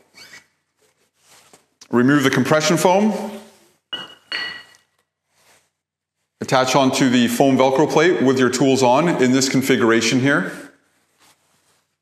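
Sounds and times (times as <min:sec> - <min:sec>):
metal plate clinking: 0:04.0 - 0:04.8
scraping and rustling: 0:10.9 - 0:12.0.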